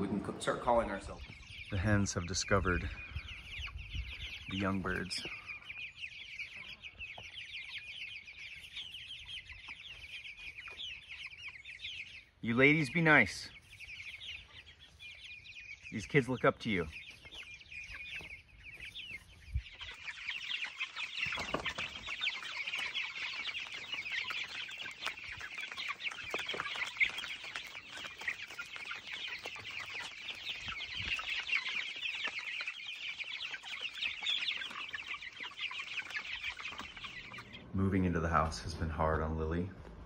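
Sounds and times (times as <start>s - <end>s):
chicks peeping: 0.0s - 40.0s.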